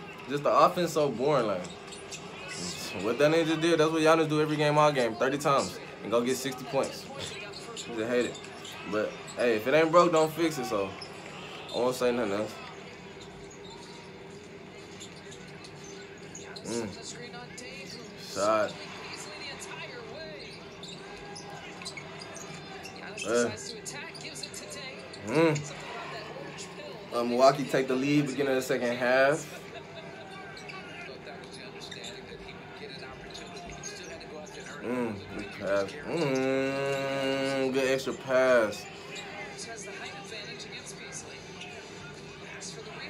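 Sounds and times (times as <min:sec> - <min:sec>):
faint commentator voice: 0:00.0 - 0:13.0, 0:16.3 - 0:43.0
arena crowd noise: 0:00.0 - 0:43.0
shoe squeaks: 0:00.1 - 0:40.2.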